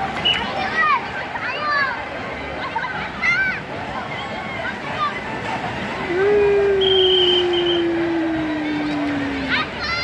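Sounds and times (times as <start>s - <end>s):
water splashing in pool: 3.7s - 10.0s
short high whistle-like tone: 6.8s - 7.9s.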